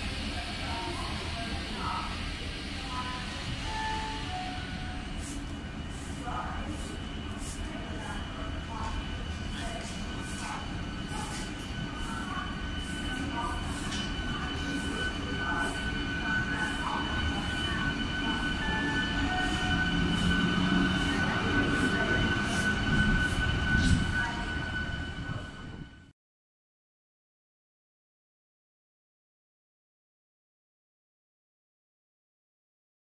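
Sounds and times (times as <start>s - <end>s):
steady high whine: 0.6s - 26.1s.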